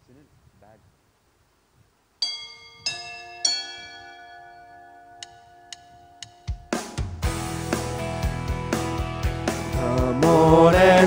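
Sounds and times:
bell-like chime notes: 2.2 - 7.1.

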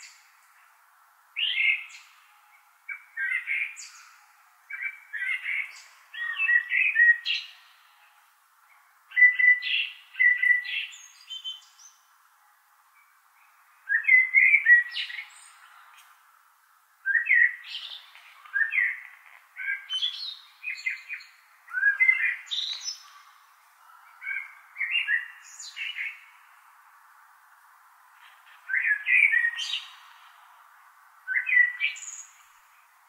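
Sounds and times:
songbird chirping: 0.0 - 33.0.

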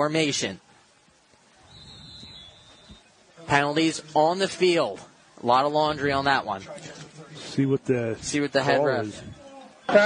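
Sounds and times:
faint crowd noise: 0.0 - 10.0
referee's whistle: 1.6 - 3.2.

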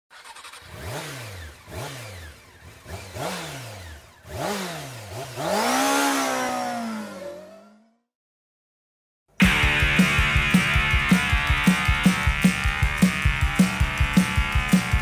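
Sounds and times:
motorcycle engine revving: 0.1 - 8.1, 9.4 - 15.0.

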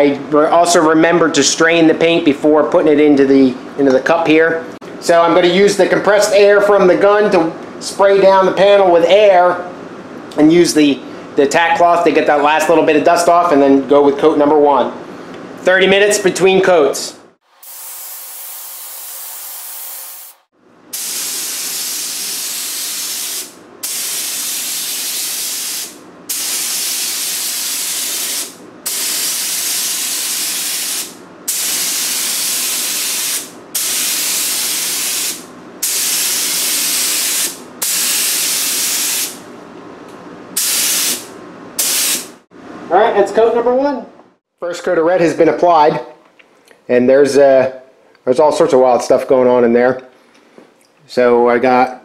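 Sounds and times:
spray gun hissing: 17.6 - 39.4, 40.6 - 42.3.

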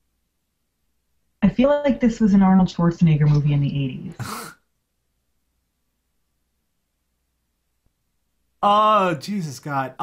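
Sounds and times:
person speaking: 4.2 - 4.5, 8.6 - 10.0
breathy vocal noise: 4.2 - 4.6.

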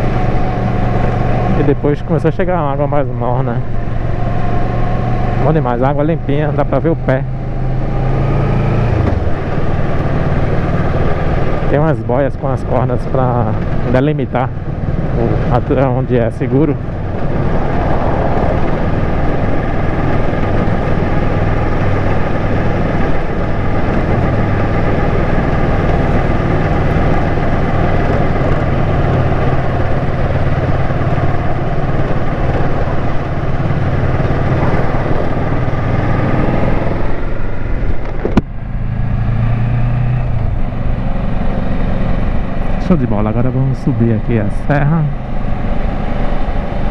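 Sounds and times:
motorcycle engine running: 0.0 - 46.9
wind noise: 14.5 - 42.9.

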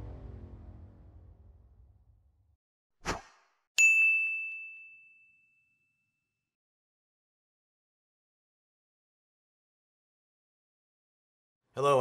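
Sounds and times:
short swish: 3.0 - 3.5
bright bell-like ding: 3.8 - 6.0.

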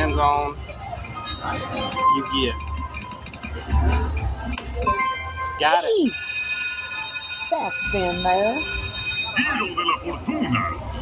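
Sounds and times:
slot machine electronic tones: 0.0 - 10.2
low casino floor hum: 0.0 - 11.0.

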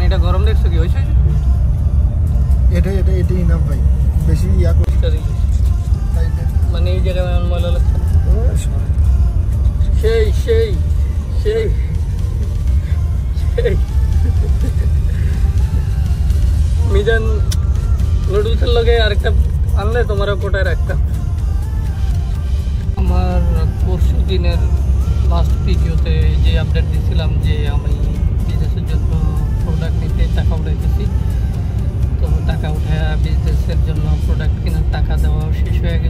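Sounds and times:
bus rumbling on highway: 0.0 - 36.0.

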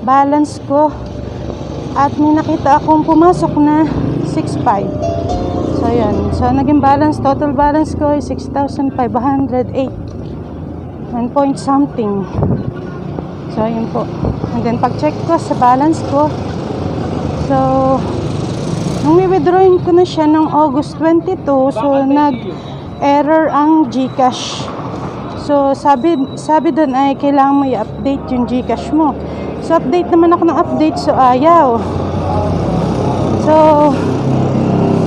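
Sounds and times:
woman speaking: 0.0 - 1.0, 2.0 - 5.0, 5.6 - 10.0, 11.1 - 12.3, 13.5 - 16.4, 17.4 - 18.1, 19.0 - 24.7, 25.4 - 31.9, 33.4 - 34.0
road traffic engine noise: 0.0 - 35.0.

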